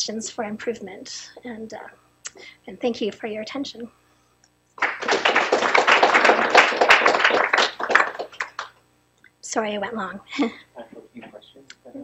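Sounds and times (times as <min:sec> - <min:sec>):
audience applauding: 0:04.8 - 0:08.8.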